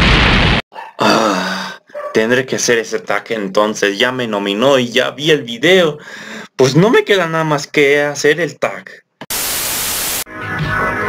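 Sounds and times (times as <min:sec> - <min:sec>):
static hiss burst: 0:09.3 - 0:10.3.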